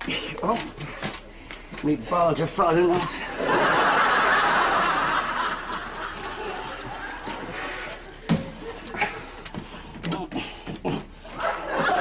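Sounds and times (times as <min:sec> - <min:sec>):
studio audience laughing: 0:03.3 - 0:07.7, 0:11.3 - 0:12.0.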